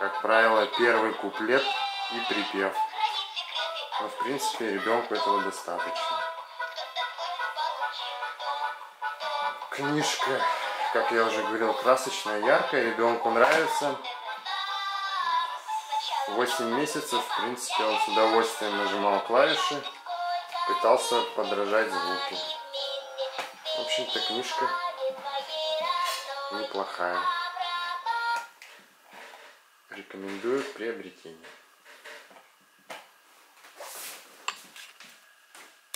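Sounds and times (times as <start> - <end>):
tinny toy piano song: 16.0 - 28.1.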